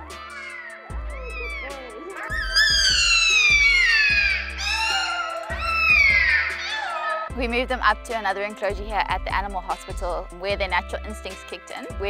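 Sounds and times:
background music with bass: 0.0 - 12.0
jackal pup whining: 0.2 - 7.3.

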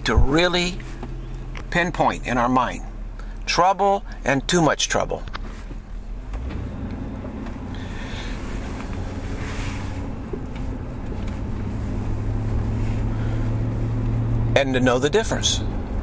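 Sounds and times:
low engine-like hum: 0.0 - 16.0.

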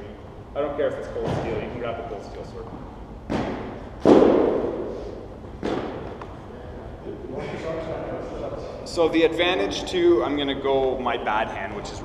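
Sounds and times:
thuds echoing in a hall: 1.2 - 1.9, 3.2 - 6.2.

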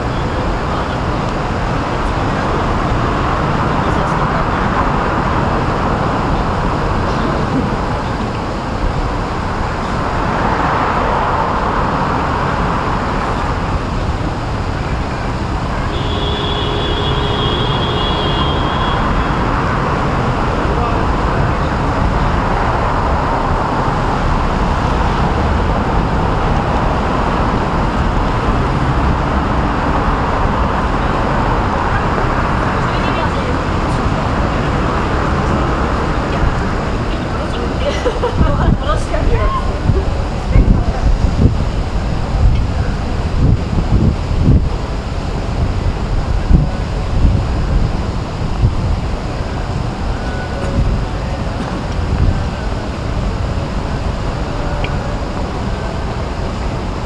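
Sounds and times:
city traffic rumble: 0.0 - 57.0.

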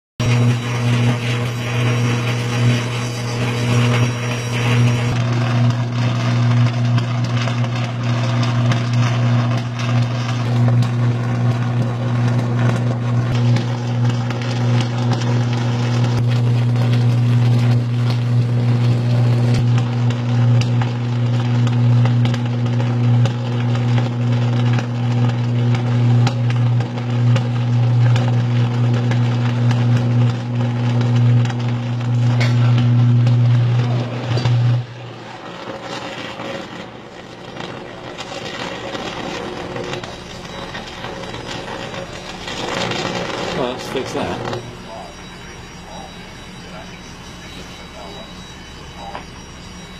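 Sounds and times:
electrical arc buzzing: 0.2 - 49.9
electrical arc crackling: 0.2 - 49.9.

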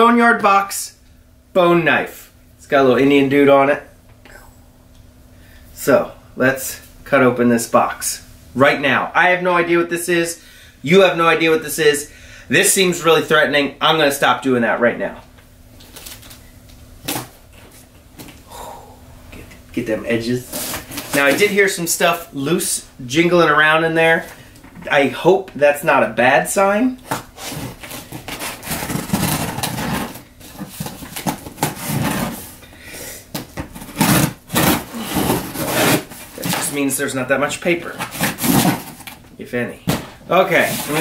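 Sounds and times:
knife cutting cardboard and tape: 27.0 - 32.5, 33.3 - 36.8, 37.8 - 39.2, 39.9 - 41.0.

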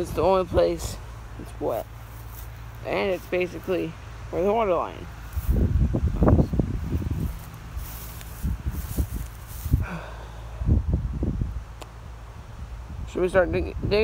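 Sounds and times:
footsteps on loose soil and grass: 0.8 - 4.0, 5.0 - 10.0
microphone handling noise: 5.3 - 10.0.

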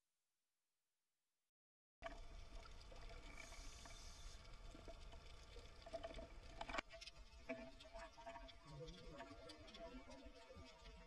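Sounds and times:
muffled underwater noise: 7.9 - 11.0.

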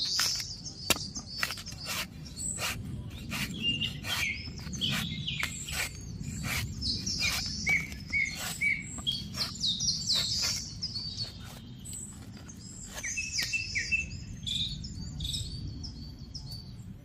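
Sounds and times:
cleaver slicing coconut husk: 0.0 - 13.6
birds chirping: 0.0 - 17.0.

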